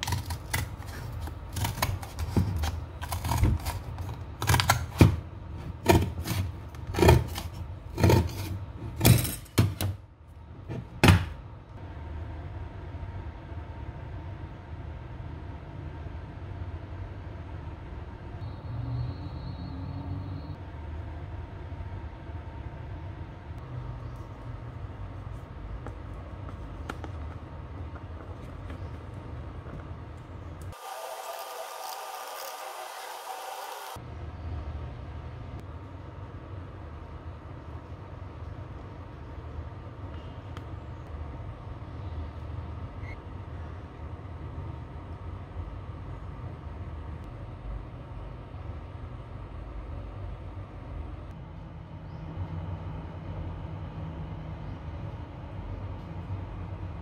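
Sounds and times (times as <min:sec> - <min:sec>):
faint hum: 0:00.0 - 0:57.0.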